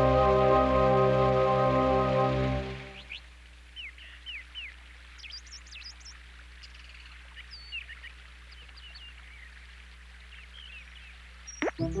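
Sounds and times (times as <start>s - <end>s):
soft hiss and low hum: 0.0s - 12.0s
birds chirping: 2.6s - 12.0s.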